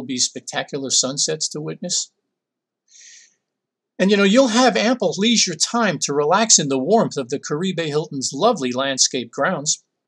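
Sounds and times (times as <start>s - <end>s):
soft intake of breath: 2.9s - 3.4s.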